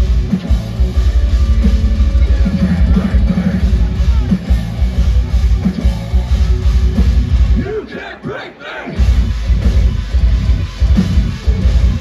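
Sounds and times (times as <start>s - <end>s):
crowd yelling and cheering: 0.0s - 12.0s
heavy metal band playing: 0.0s - 12.0s.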